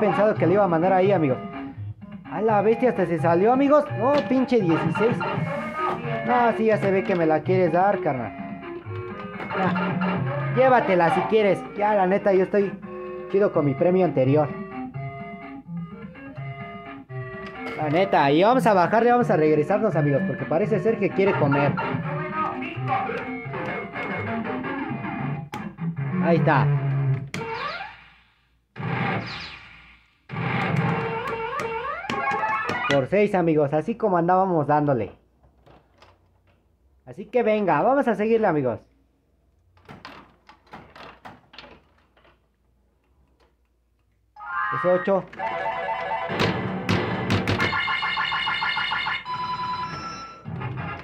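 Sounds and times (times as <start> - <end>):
slot machine synthesised tune: 0.0 - 1.8, 2.4 - 25.4, 44.4 - 51.0.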